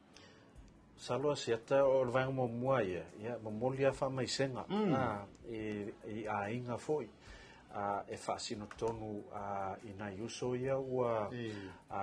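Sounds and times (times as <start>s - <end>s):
man talking: 1.0s - 7.1s, 7.7s - 12.0s.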